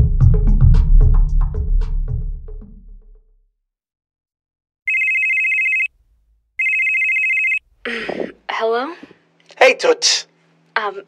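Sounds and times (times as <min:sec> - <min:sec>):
telephone ringing: 0:04.9 - 0:05.9, 0:06.6 - 0:07.6.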